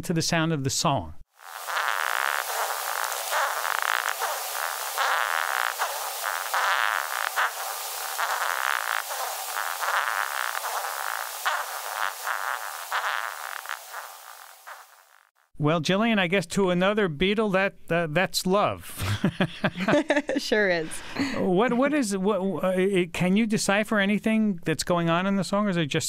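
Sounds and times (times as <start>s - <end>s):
beetle rasping pulses: 1.4s - 15.4s.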